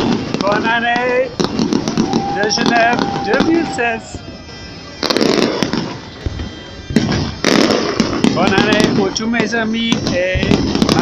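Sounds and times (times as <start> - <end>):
firework bang: 0.0 - 11.0
fireworks blast with crackling: 0.0 - 11.0.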